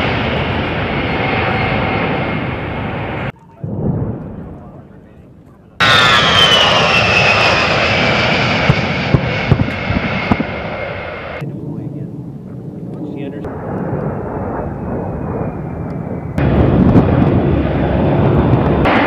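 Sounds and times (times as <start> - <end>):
jet engines whining: 0.0 - 19.0
low jet rumble: 0.0 - 19.0.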